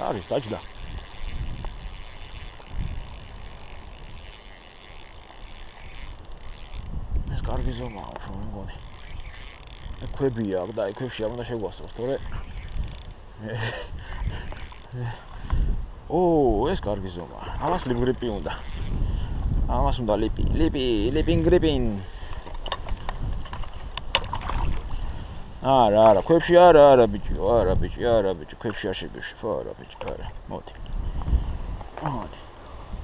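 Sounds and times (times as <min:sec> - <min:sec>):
fishing reel drag ratcheting: 0:00.0 - 0:15.8, 0:17.4 - 0:25.4
wind rumbling on microphone: 0:00.0 - 0:29.2, 0:29.9 - 0:33.0.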